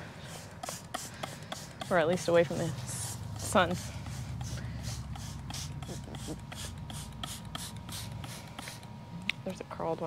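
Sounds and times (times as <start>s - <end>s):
spray bottle hissing: 0.3s - 2.3s, 3.4s - 8.8s.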